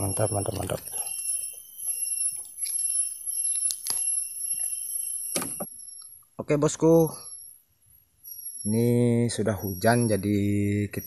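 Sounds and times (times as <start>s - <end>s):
high-pitched insect whine: 0.0s - 11.0s.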